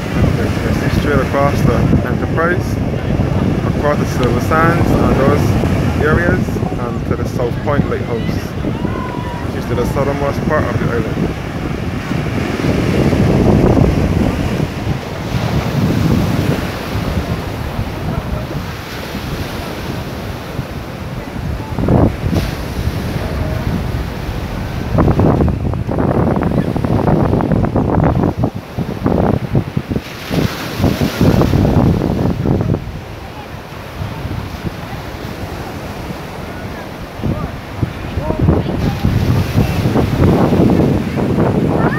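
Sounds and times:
small waves breaking on beach: 0.0s - 41.9s
wind buffeting microphone: 0.0s - 41.9s.

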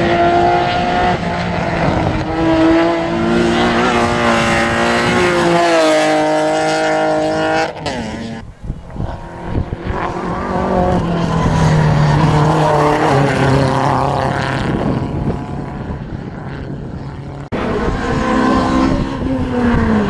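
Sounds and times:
race car engine approaching: 0.0s - 20.0s.

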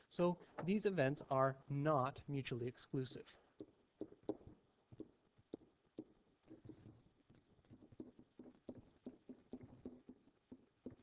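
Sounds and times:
stylus tapping and scratching: 3.2s - 11.0s.

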